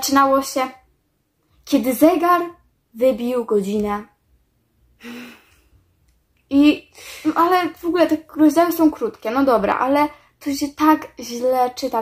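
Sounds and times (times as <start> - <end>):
woman sighing: 5.0 - 5.7.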